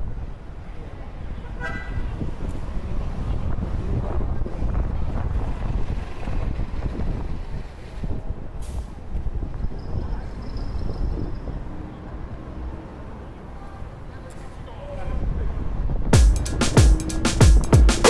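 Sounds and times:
wind buffeting microphone: 0:00.0 - 0:11.8, 0:15.0 - 0:16.2
street traffic: 0:00.0 - 0:18.0.

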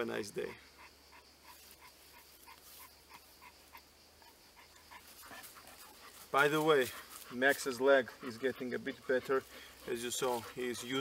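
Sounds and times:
dog panting: 0:00.8 - 0:11.0
soft rustle: 0:01.5 - 0:03.4, 0:04.7 - 0:07.9.

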